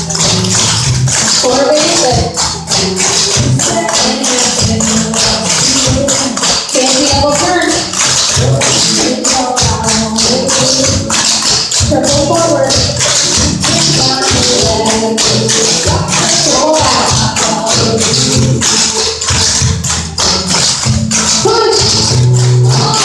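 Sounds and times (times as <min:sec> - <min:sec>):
song with singing voice: 0:00.0 - 0:23.0.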